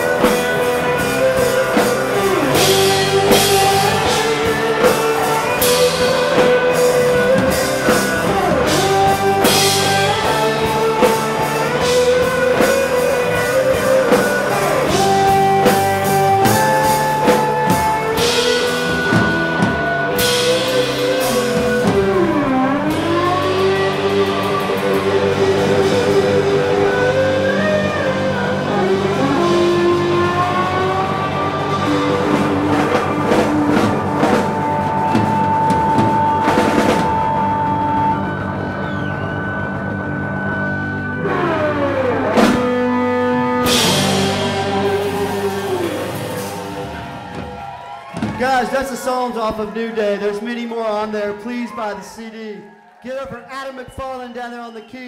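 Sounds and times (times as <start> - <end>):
electric guitar lead: 0.0 - 48.8
bass: 0.0 - 55.0
drums: 0.0 - 55.0.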